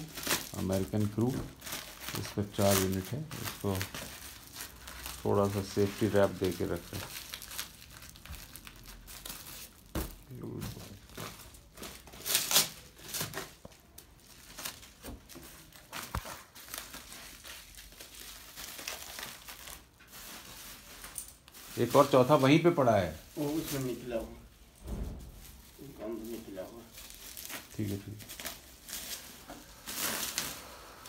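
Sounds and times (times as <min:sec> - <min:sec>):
bubble wrap crinkling: 0:00.0 - 0:31.0.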